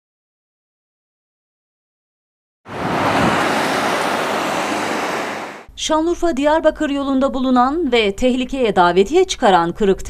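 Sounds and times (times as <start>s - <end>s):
cars passing on busy road: 2.7s - 5.7s.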